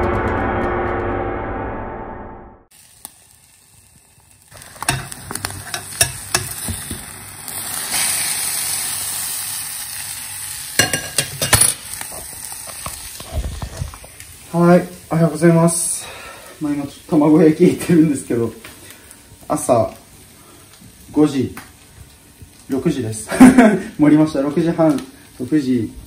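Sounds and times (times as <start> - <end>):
crepe sizzling in frying pan: 2.7 - 26.0
utensil scraping and tapping pan: 4.8 - 7.1, 10.8 - 11.8.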